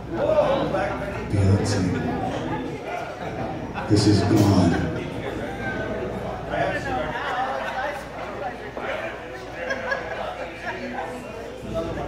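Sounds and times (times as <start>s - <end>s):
people talking: 0.2s - 5.6s.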